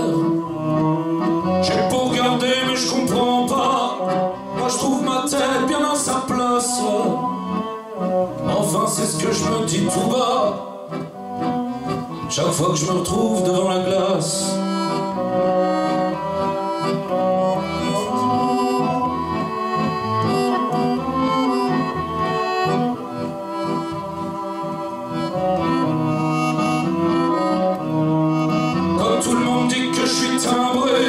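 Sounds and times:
live band playing: 0.0 - 31.0.

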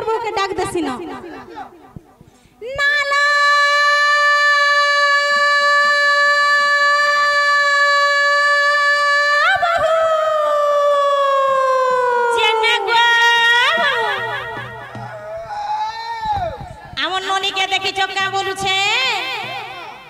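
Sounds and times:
woman singing a long note: 2.6 - 14.5.

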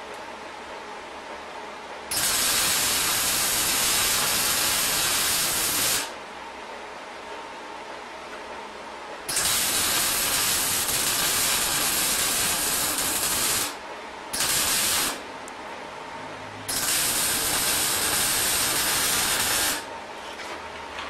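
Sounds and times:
arc welding crackling: 2.1 - 6.2, 9.3 - 13.8, 14.4 - 15.2, 16.7 - 19.9.

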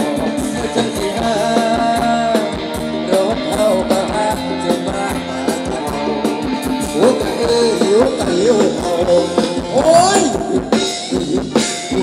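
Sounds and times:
live band playing dance music: 0.0 - 12.0
steady drum beat: 0.0 - 12.0.

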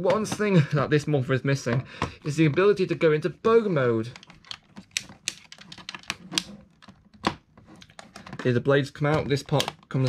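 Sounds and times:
plastic toy clicks and taps: 4.2 - 7.4.

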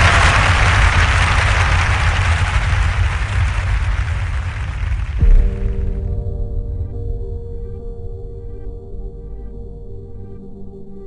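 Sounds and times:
deep rumble: 0.0 - 11.0.

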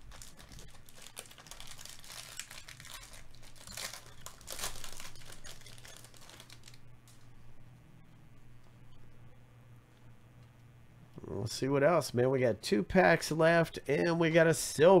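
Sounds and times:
foil wrapper crinkling and tearing: 0.0 - 7.2.

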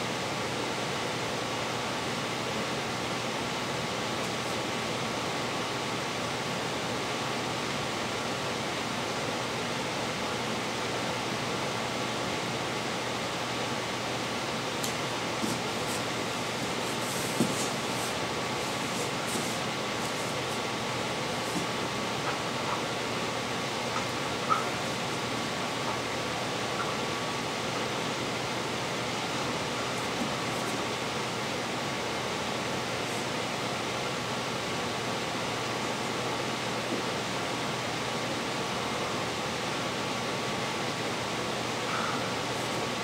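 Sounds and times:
faint hum: 0.0 - 43.0
room hiss: 0.0 - 43.0.

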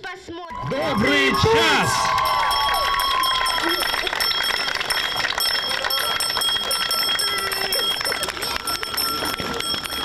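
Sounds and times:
small hand bell ringing: 2.1 - 10.0.

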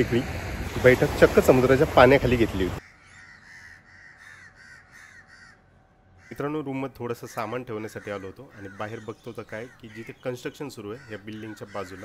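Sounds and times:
crow cawing: 2.8 - 6.6, 7.3 - 10.2, 10.8 - 12.0.

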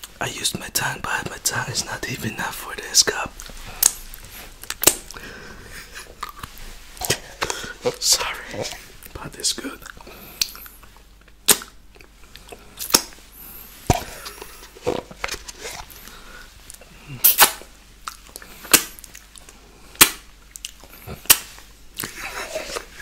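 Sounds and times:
wet mouth pops and smacks: 3.4 - 5.2, 11.3 - 13.2, 17.2 - 22.1.

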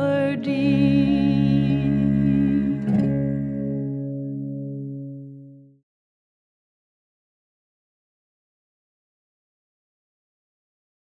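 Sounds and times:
guitar and cello chord: 0.0 - 5.8
soft guitar strum: 0.0 - 5.8.

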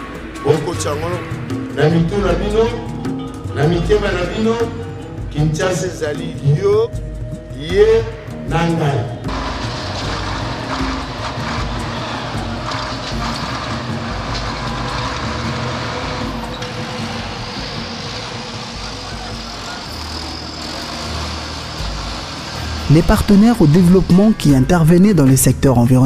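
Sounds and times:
vehicle engines and traffic: 0.0 - 8.5, 9.1 - 26.0.

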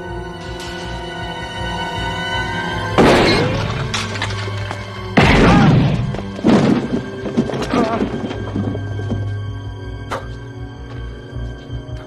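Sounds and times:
tense orchestral music: 0.0 - 12.0
glass shattering: 3.0 - 8.4
gunshot: 5.2 - 6.8.

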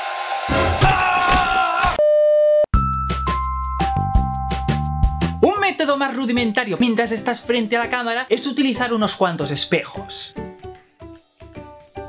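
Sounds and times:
man shouting: 0.8 - 2.0
music with a beat: 2.8 - 5.4.

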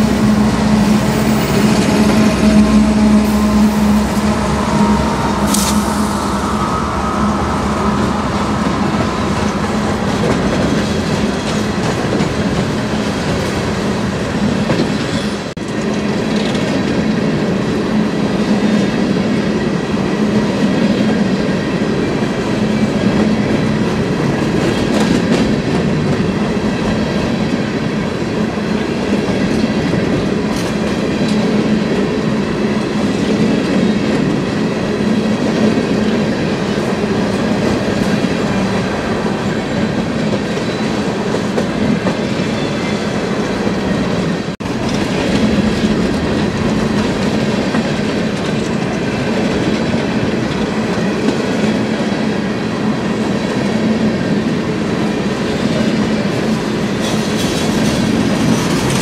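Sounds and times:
freight train wheels rumbling on rail: 0.0 - 59.0.

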